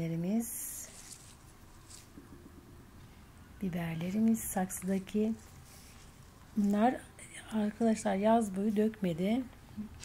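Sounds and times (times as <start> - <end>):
leaves rustling: 0.7 - 2.2.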